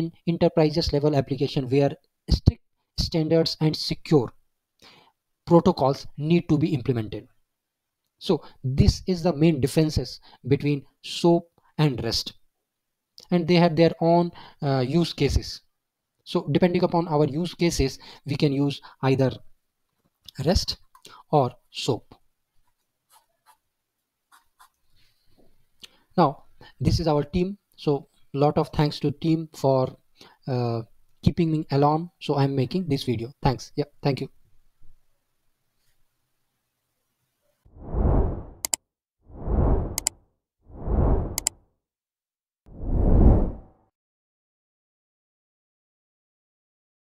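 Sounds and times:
stylus scratching while writing: 22.6s - 23.7s, 24.3s - 24.8s
whoosh sound effect: 37.8s - 38.7s, 39.3s - 40.1s, 40.7s - 41.5s.

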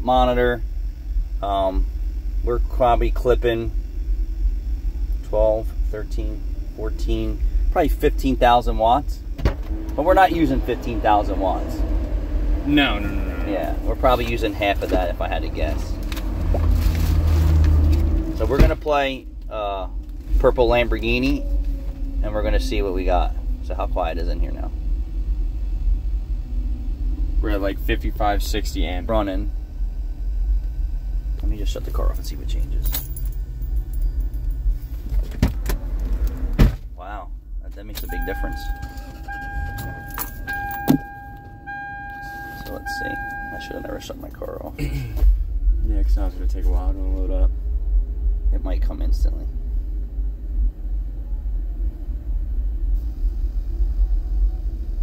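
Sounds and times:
car engine idling: 0.0s - 51.4s
car warning chime: 38.0s - 44.6s.

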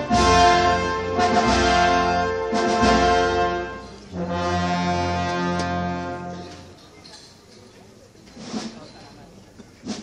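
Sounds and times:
wind band playing held chord: 0.0s - 6.8s.

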